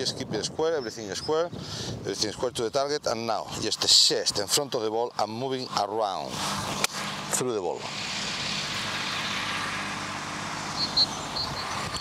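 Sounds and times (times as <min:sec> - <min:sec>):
outdoor background hiss: 0:00.0 - 0:12.0
short high chirps: 0:10.8 - 0:12.0.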